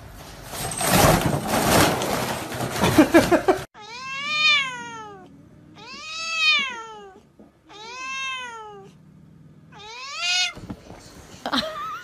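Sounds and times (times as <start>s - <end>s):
cat meowing: 3.8s - 9.0s, 9.7s - 10.6s.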